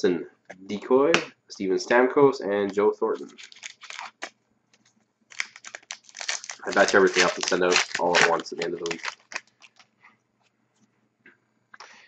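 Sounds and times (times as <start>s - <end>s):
trading cards clicking and rustling: 3.2s - 9.9s.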